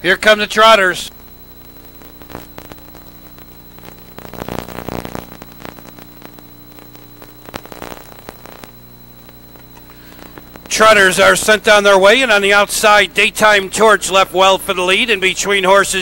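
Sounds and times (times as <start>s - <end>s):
indistinct background noise: 0.0s - 16.0s
tape hiss and electrical hum: 0.0s - 16.0s.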